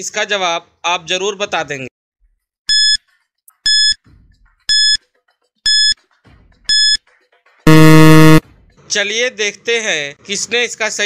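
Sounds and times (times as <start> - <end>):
short high electronic beeps: 3.6 - 4.0, 4.7 - 5.0, 5.7 - 6.0, 6.7 - 7.0, 7.7 - 8.4
loud low buzzer: 7.7 - 8.4.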